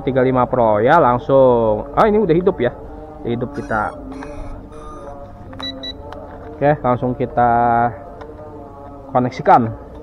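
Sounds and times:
soft background music: 0.0 - 10.0
short high electronic beeps: 3.6 - 6.0.

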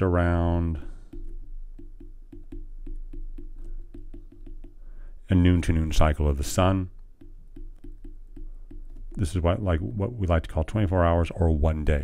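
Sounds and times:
stylus tapping on glass screen: 1.0 - 5.1, 7.0 - 9.3.

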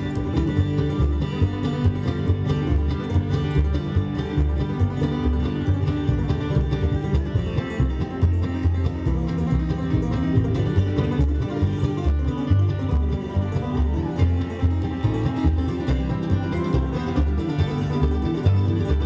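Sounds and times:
acoustic guitar: 0.0 - 19.0
banjo picking: 0.0 - 19.0
mandolin picking: 0.0 - 19.0
upright bass plucking: 0.0 - 19.0.

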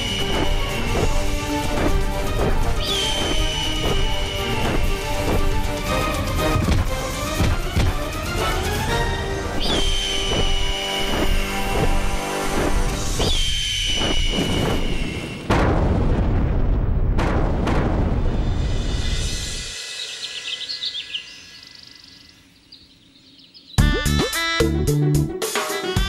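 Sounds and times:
dramatic background music: 0.0 - 14.2
loud explosion: 14.3 - 18.8
faint bird chirps: 19.1 - 24.5.

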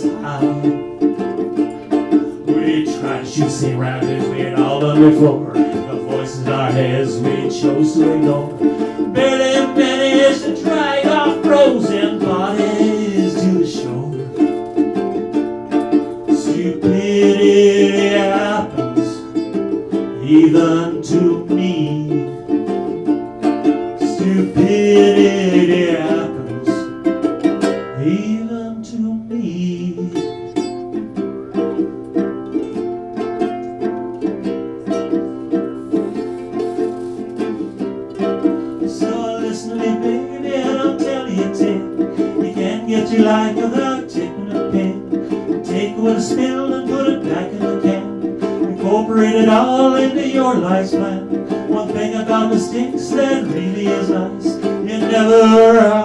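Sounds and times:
short melody phrases: 0.0 - 56.0
ukuleles strumming chords: 0.0 - 56.0.

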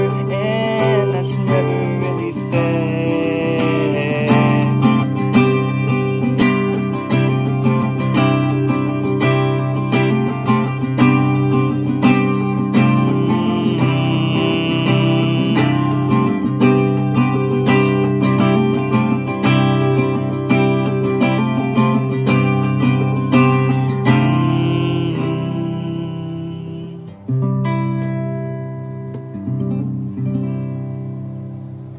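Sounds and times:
acoustic guitar strumming: 0.0 - 31.9.

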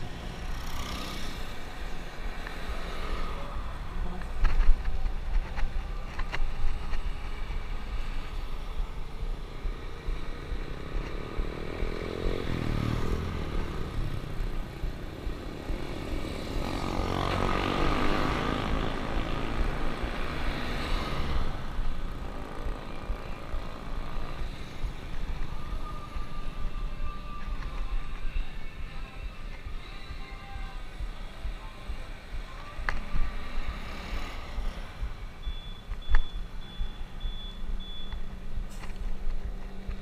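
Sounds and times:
motor vehicles passing: 0.0 - 40.0
road rumble: 0.0 - 40.0.

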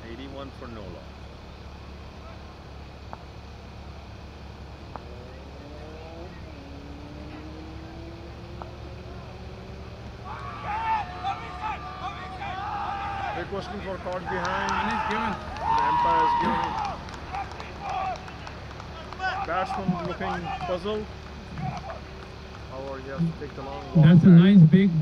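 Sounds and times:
steady low outdoor hum: 0.0 - 25.0
faint rising drone: 0.8 - 17.3
fielders shouting appeal: 10.1 - 25.0.

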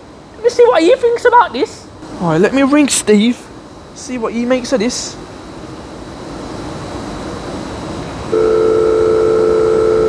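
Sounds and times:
faint outdoor hum: 0.0 - 10.0
telephone dial tone: 8.3 - 10.0.

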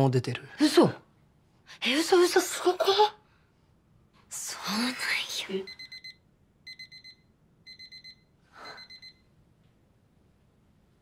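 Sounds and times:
electronic alarm beeping: 5.6 - 9.4.

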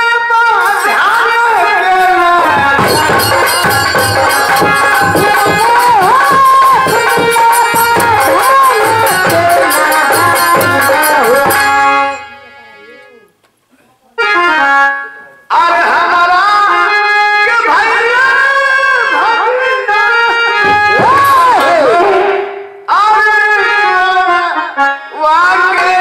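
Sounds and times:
harmonium playing: 0.0 - 13.3, 14.2 - 26.0
person singing: 0.0 - 13.3, 15.5 - 26.0.

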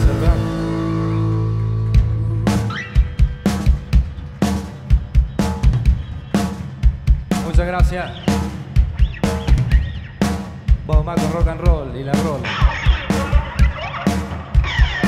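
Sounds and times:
electric guitar: 0.0 - 4.0
rock band playing: 0.0 - 15.0.

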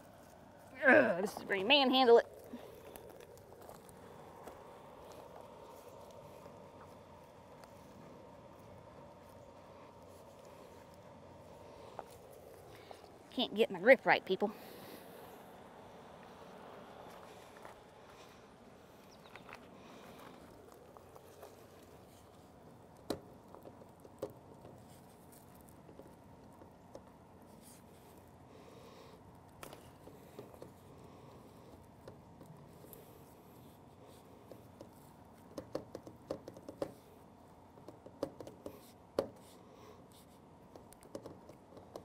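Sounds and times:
tubing rustling and scraping: 16.2 - 35.5.

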